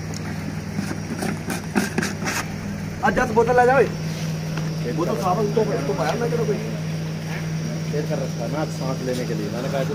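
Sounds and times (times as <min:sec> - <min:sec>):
steady low hum: 0:00.0 - 0:09.9.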